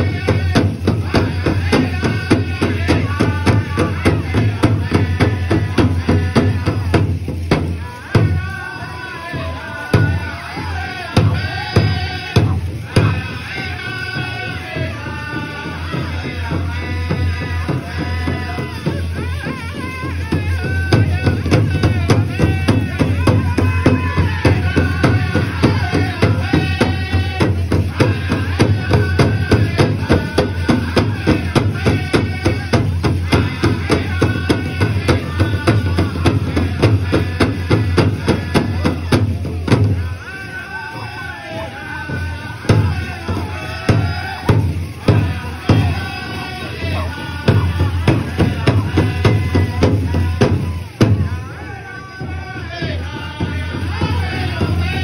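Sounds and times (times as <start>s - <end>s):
large hand drum beating: 0.0s - 8.4s, 14.8s - 40.1s, 42.1s - 51.6s, 52.2s - 55.0s
group singing: 0.0s - 55.0s.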